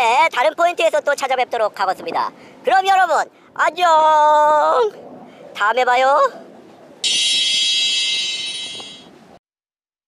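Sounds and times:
high bright bell ding: 7.0 - 9.1.

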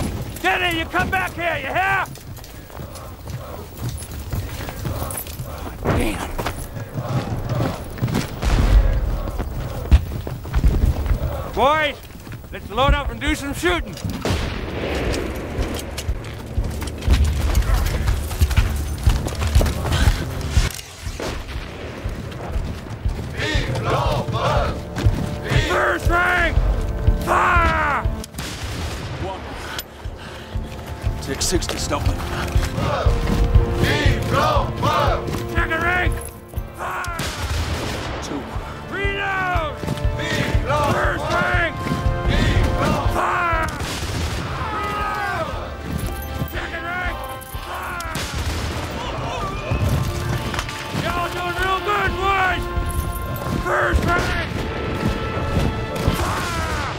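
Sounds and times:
men shouting: 0.0 - 10.2, 10.9 - 13.7, 23.2 - 28.3, 31.8 - 37.4, 38.4 - 54.7, 56.0 - 56.9
low rumble of battle noise: 0.0 - 35.6
background music: 0.0 - 56.9
heavy booms: 8.3 - 11.5
musket and rifle shots: 12.7 - 22.5, 26.6 - 29.9, 31.8 - 38.7, 39.8 - 56.9.

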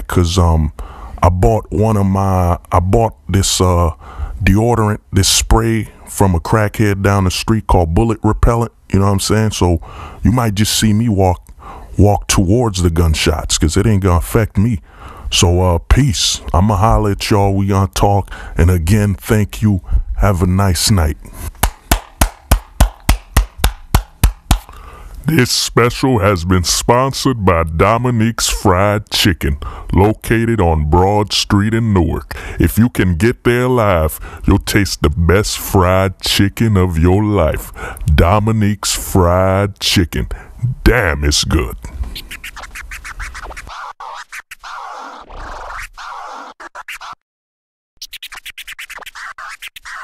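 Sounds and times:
bass: 0.0 - 21.5, 24.7 - 43.7
music with record scratching: 40.8 - 47.2, 48.0 - 50.0.

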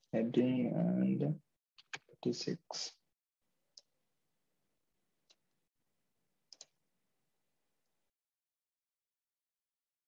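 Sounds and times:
computer mouse clicks: 6.5 - 6.8.

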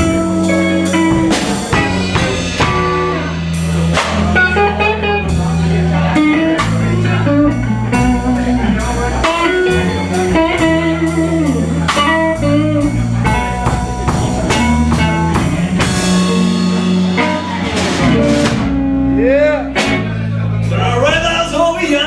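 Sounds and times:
electric guitar lead: 0.0 - 20.7
drum kit steady beat: 0.0 - 22.0
electric bass notes: 0.0 - 22.0.

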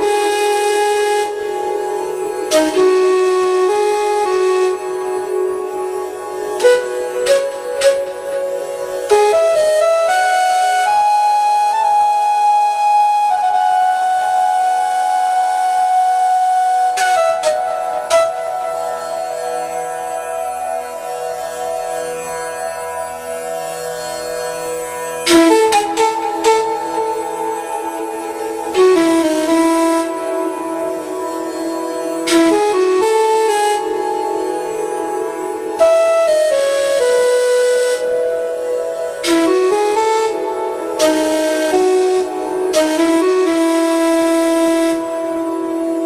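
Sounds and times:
flute holding a long note: 0.0 - 46.0.

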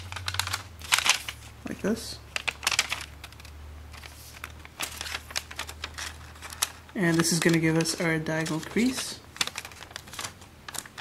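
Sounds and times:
foil paper crinkling: 0.0 - 1.6, 2.3 - 11.0
low steady hum: 0.0 - 11.0.

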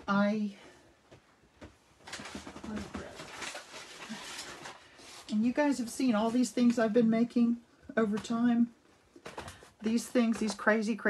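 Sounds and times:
crackly rustling: 1.0 - 10.8.

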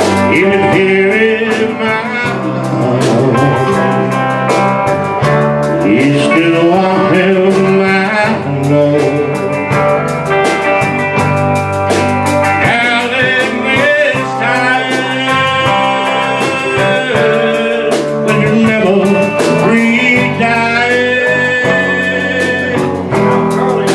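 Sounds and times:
country band playing: 0.0 - 23.9.

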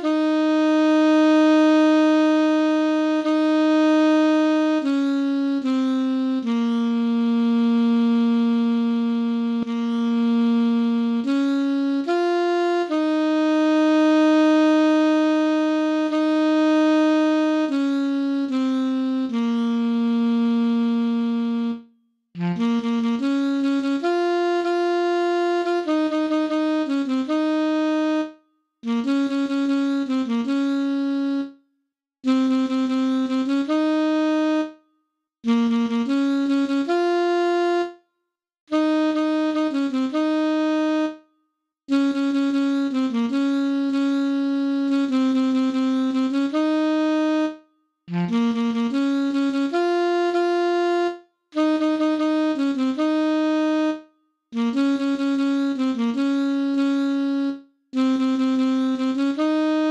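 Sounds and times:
alto saxophone melody: 0.0 - 38.1, 38.7 - 59.9.

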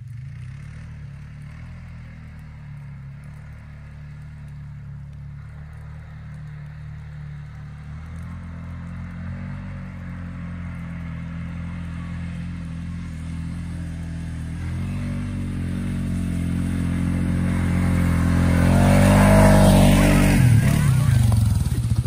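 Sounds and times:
quad bike engine running: 0.0 - 22.0.

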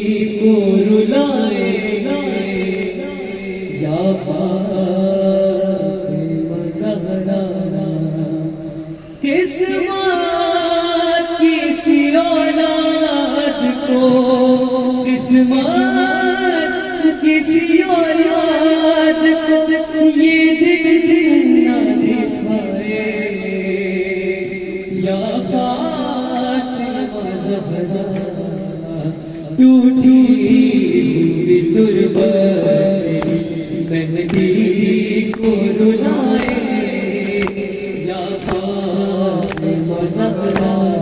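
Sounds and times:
man chanting into a microphone: 0.0 - 41.0.

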